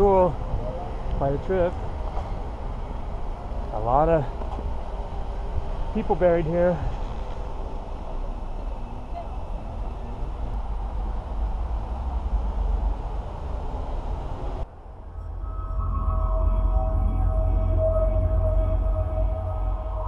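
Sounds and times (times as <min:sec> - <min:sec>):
music with held tones and drone: 0:15.0 - 0:20.0.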